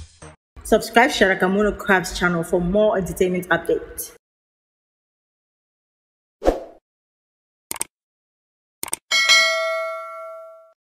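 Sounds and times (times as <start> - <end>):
notification bell ding: 9.1 - 10.8.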